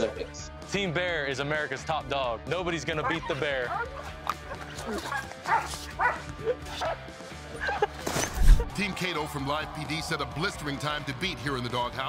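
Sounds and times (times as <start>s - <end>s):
dog barking: 3.0s - 7.0s.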